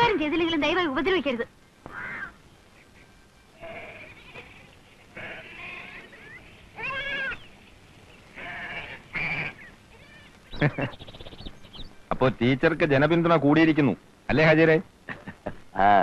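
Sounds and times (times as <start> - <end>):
goat bleating: 3.6 - 7.5, 8.4 - 10.4.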